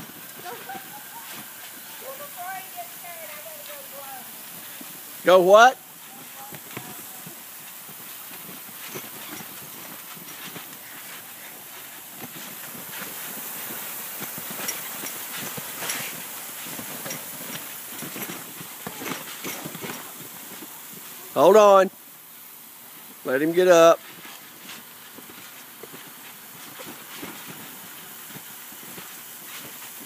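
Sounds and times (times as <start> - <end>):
water ticks and splashes on mat: 0.0 - 5.2, 5.9 - 21.3, 24.0 - 30.0
sprinkler spraying water: 0.0 - 30.0.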